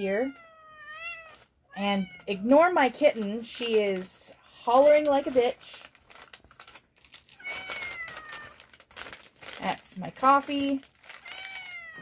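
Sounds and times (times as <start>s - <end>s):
kitten meowing: 0.2s - 2.5s, 7.4s - 8.6s, 11.2s - 12.0s
plastic pouch crinkling: 1.1s - 12.0s.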